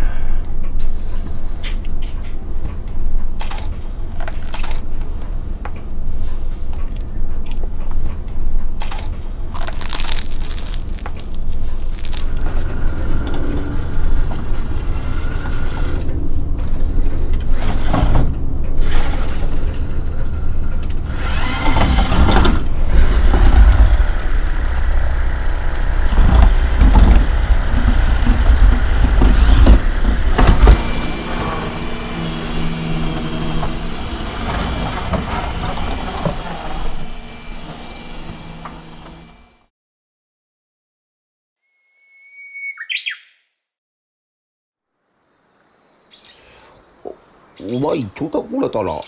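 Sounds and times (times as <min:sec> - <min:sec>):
massage gun buzzing thud: 0:21.4 - 0:32.7.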